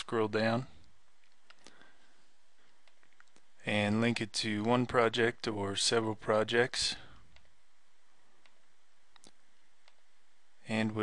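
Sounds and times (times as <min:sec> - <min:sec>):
low steady hiss: 0:00.0 - 0:11.0
computer mouse clicks: 0:00.8 - 0:01.8, 0:02.7 - 0:03.5, 0:07.3 - 0:07.6, 0:08.4 - 0:10.1.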